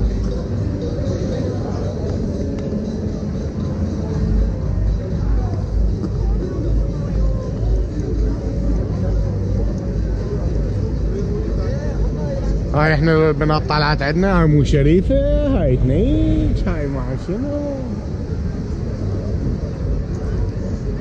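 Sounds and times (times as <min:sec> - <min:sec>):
crowd chatter: 0:00.0 - 0:21.0
faint music: 0:00.0 - 0:21.0.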